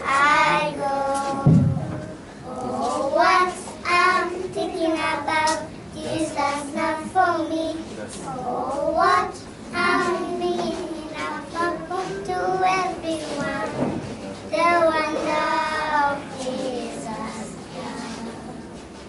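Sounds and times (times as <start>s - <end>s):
children singing in unison: 0.0s - 14.0s, 14.6s - 18.6s.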